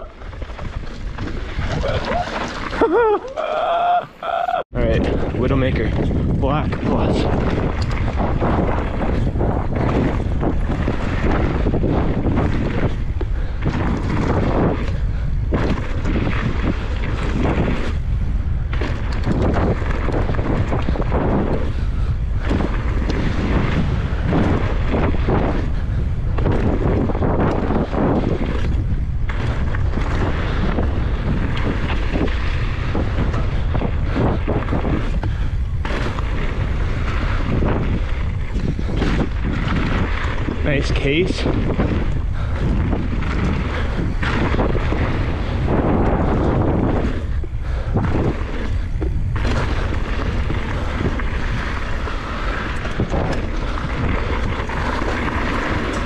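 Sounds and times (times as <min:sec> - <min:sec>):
wind buffeting microphone: 0:00.0 - 0:56.0
tyres rattling over gravel: 0:29.3 - 0:56.0.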